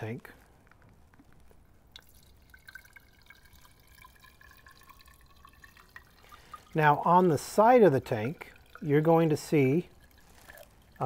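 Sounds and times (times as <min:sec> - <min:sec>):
liquid pouring into metal tank: 0:01.5 - 0:11.0.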